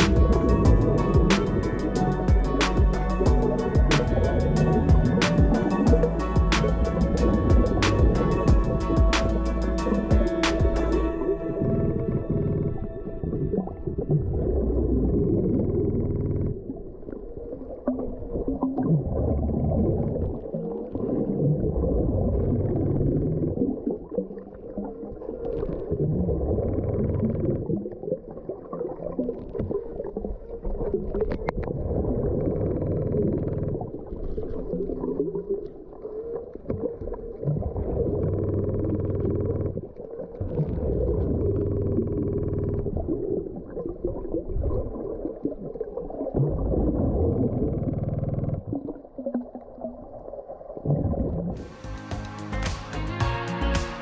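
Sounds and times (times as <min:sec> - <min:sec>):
music: 0:00.0 - 0:15.1, 0:51.6 - 0:54.0.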